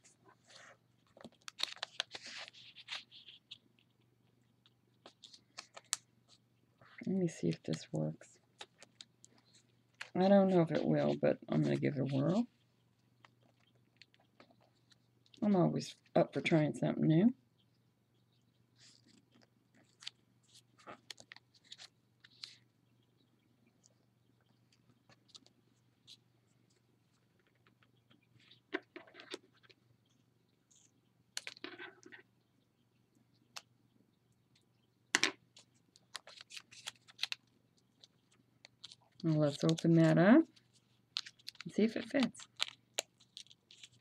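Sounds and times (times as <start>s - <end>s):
paper rustling and crinkling: 0.0s - 3.6s, 5.0s - 7.9s, 18.8s - 22.6s, 36.0s - 37.4s, 38.0s - 44.0s.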